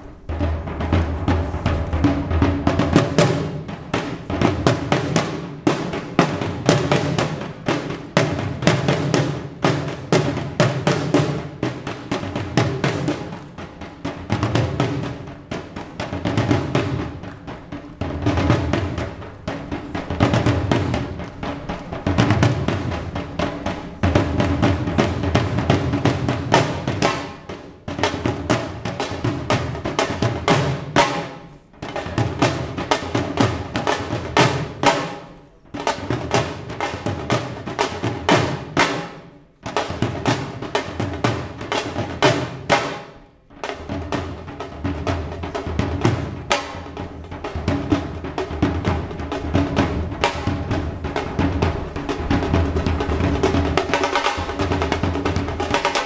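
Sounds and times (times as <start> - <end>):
barrel drum playing fast rhythms: 0.0 - 56.0.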